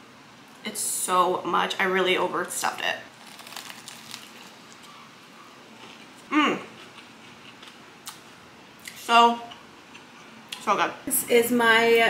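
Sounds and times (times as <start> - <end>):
chewing food: 3.2 - 8.2.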